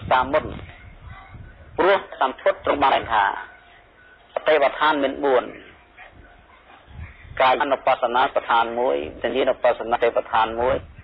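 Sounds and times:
man speaking: 0:00.0 - 0:00.6, 0:01.8 - 0:03.5, 0:04.3 - 0:05.8, 0:07.3 - 0:10.9.

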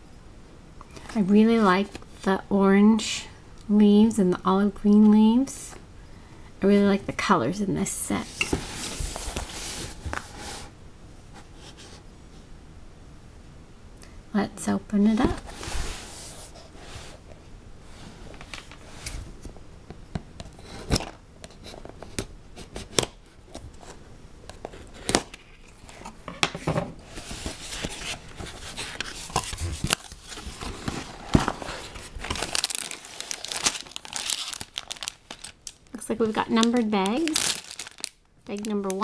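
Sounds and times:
plastic bags crinkling: 0:27.2 - 0:39.0
cardboard flap tearing: 0:28.8 - 0:35.5, 0:37.3 - 0:38.1.

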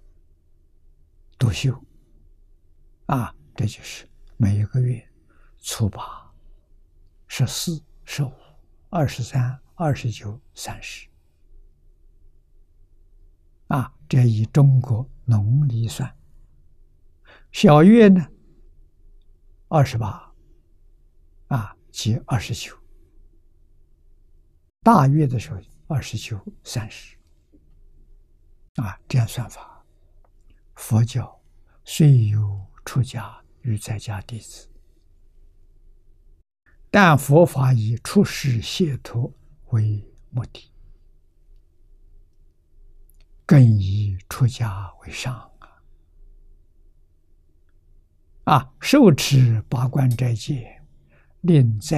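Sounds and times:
man lecturing: 0:01.4 - 0:01.8, 0:03.1 - 0:06.2, 0:07.3 - 0:11.1, 0:13.7 - 0:16.2, 0:17.5 - 0:18.3, 0:19.7 - 0:20.3, 0:21.5 - 0:22.8, 0:24.9 - 0:27.2, 0:28.8 - 0:29.7, 0:30.8 - 0:34.6, 0:37.0 - 0:40.6, 0:43.5 - 0:45.6, 0:48.5 - 0:50.8, 0:51.4 - 0:51.9
elderly man speaking slowly: 0:01.4 - 0:01.9, 0:03.0 - 0:06.3, 0:07.3 - 0:11.1, 0:13.6 - 0:16.2, 0:17.3 - 0:18.4, 0:19.7 - 0:20.4, 0:21.5 - 0:22.8, 0:24.8 - 0:27.2, 0:28.8 - 0:29.8, 0:30.8 - 0:34.7, 0:36.9 - 0:40.7, 0:43.4 - 0:45.8, 0:48.4 - 0:50.8, 0:51.4 - 0:51.9.

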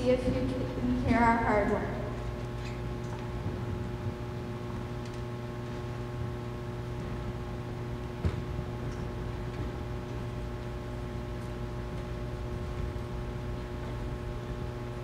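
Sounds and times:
electrical hum from pa system: 0:00.0 - 0:15.0.

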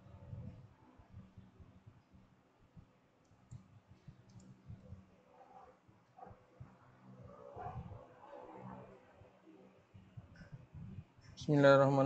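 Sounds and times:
faint clicks: 0:03.2 - 0:05.0.

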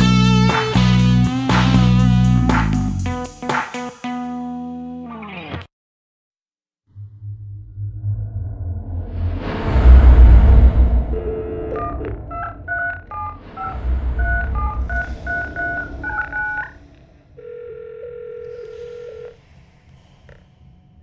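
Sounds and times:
steady telephone line tone: 0:17.4 - 0:19.4.

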